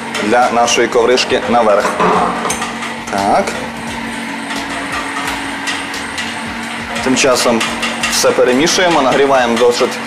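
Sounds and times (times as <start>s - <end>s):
kitchen background hiss and hum: 0.0s - 10.0s
whisk clicking in metal bowl: 4.5s - 10.0s.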